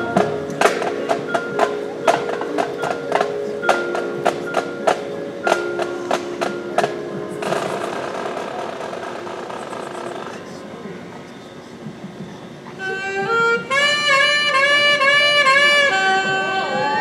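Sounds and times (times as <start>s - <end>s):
struck mallet percussion: 0.0s - 10.1s
marching band held chord: 0.0s - 10.5s, 12.8s - 17.0s.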